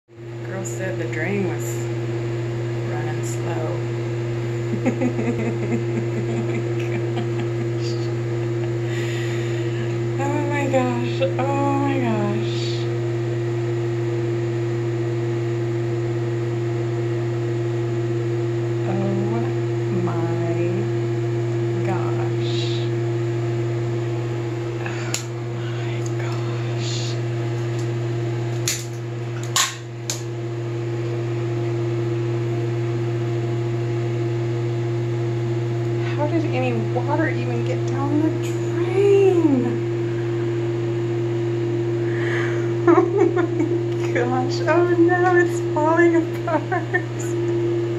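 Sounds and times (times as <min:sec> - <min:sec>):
low mechanical hum: 0:00.1 - 0:47.9.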